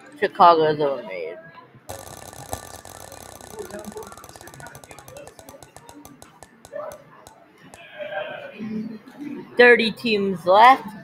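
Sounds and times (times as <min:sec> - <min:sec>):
spinner wheel ticking: 0:01.9 - 0:07.4.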